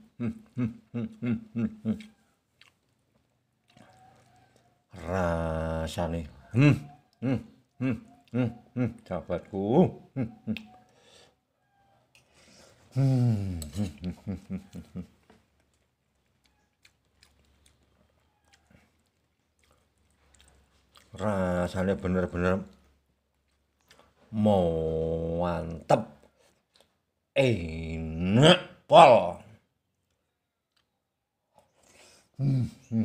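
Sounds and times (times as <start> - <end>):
quiet chewing: 0.0 - 5.1, 6.2 - 24.4, 25.6 - 27.3, 29.8 - 32.9.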